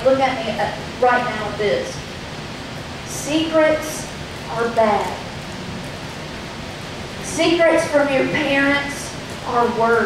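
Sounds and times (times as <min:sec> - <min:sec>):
steady hiss of room tone: 0:00.0 - 0:10.0.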